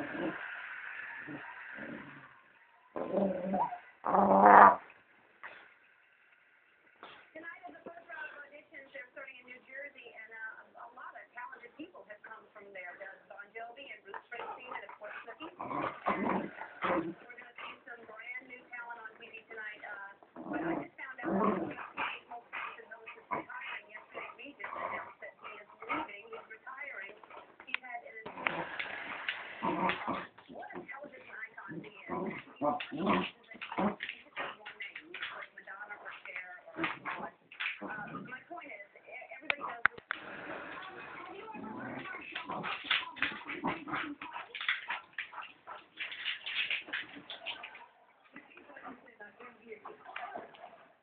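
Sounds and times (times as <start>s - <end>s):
dogs growling softly: 0.0s - 2.4s, 3.0s - 5.7s, 14.2s - 17.9s, 20.2s - 27.7s, 28.3s - 31.1s, 31.7s - 38.4s, 39.5s - 49.0s.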